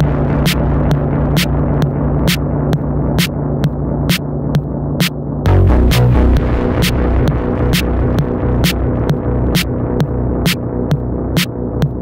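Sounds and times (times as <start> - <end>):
techno track with deep bass: 0.0 - 12.0.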